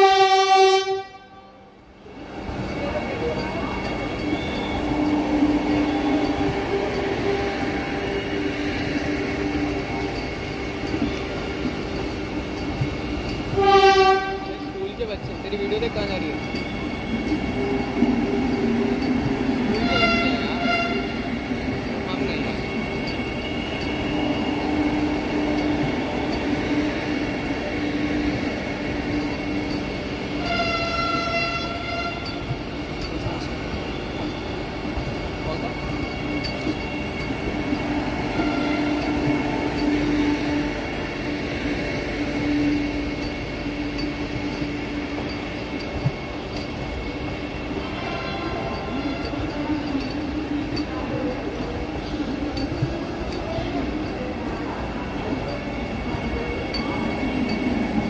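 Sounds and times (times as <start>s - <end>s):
train horn: 0.0s - 1.7s, 13.5s - 14.8s, 19.8s - 21.2s, 30.4s - 32.4s, 38.4s - 39.0s
electric train rolling past: 0.0s - 58.0s.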